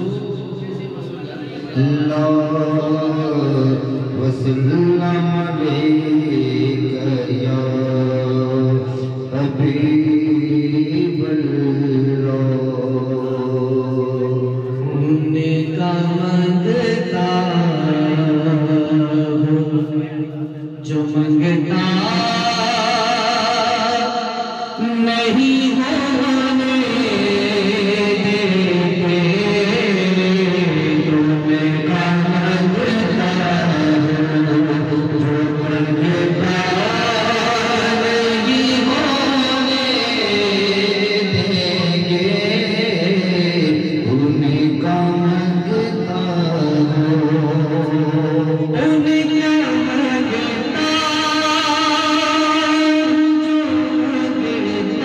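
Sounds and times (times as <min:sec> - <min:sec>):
man singing long held notes: 0:00.0 - 0:55.0
men chanting into microphones: 0:00.0 - 0:55.0.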